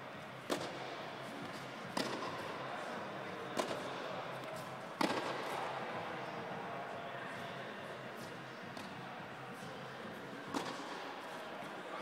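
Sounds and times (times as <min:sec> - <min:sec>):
tennis ball knocks: 0:00.5 - 0:02.4, 0:05.0 - 0:05.6.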